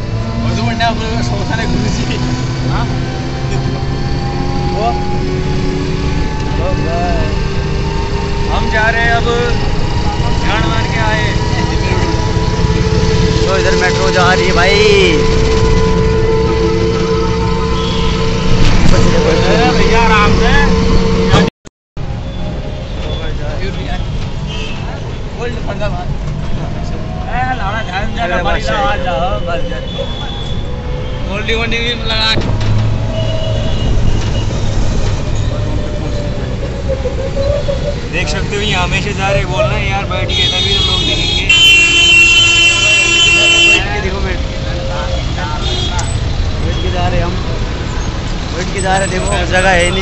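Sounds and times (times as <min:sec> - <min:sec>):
auto-rickshaw engine drone: 0:00.0 - 0:50.0
road noise: 0:00.0 - 0:50.0.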